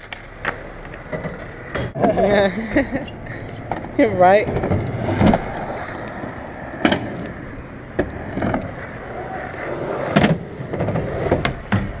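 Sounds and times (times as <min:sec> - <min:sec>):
skateboard wheels rolling on concrete: 0:00.0 - 0:12.0
skateboards clacking on ground: 0:00.0 - 0:12.0.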